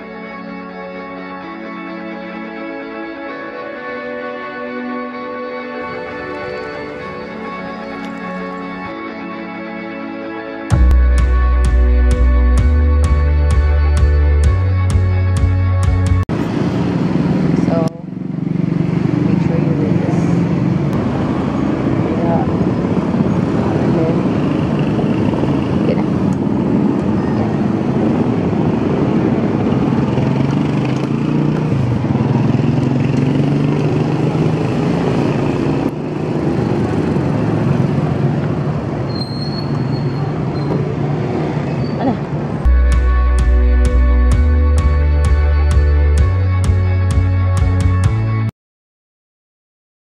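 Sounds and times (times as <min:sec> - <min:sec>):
vehicle engines passing: 0:05.1 - 0:09.1, 0:10.7 - 0:48.4
people talking: 0:17.5 - 0:18.1, 0:19.2 - 0:20.4, 0:22.0 - 0:22.8, 0:23.5 - 0:24.4, 0:25.8 - 0:26.2, 0:42.0 - 0:42.3.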